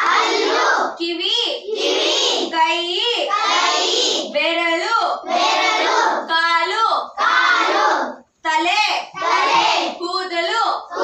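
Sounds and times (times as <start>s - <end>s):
children chanting in unison: 0.0s - 1.0s, 1.6s - 2.6s, 3.2s - 4.4s, 5.2s - 6.3s, 7.1s - 8.3s, 9.1s - 10.0s, 10.8s - 11.0s.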